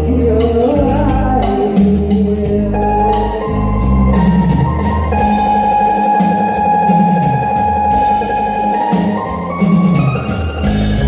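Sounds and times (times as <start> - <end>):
electronic keyboard ballad: 0.0 - 11.0.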